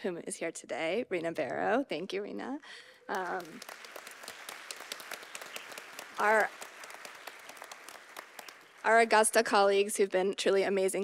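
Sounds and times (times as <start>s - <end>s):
audience applause: 3.1s - 9.2s.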